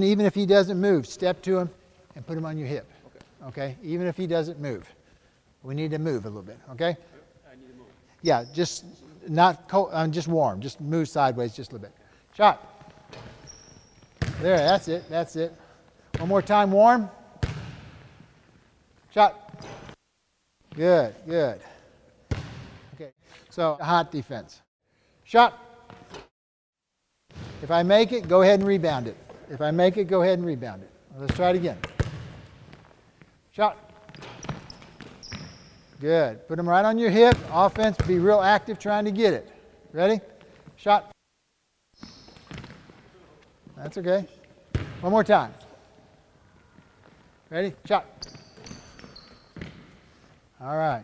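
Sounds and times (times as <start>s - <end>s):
sneakers squeaking on hardwood: 12.6s - 15.4s, 19.4s - 20.0s, 31.3s - 36.0s, 42.0s - 43.8s, 46.7s - 50.4s
basketball bounce on hardwood floor: 14.0s - 14.4s, 17.4s - 18.0s, 22.3s - 22.7s, 31.3s - 32.4s, 42.3s - 43.0s.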